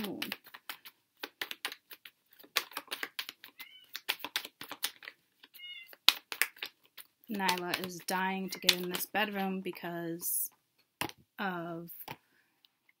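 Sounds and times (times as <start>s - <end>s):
card deck being shuffled: 0.0s - 9.7s
cat meowing: 3.6s - 4.0s, 5.6s - 6.0s.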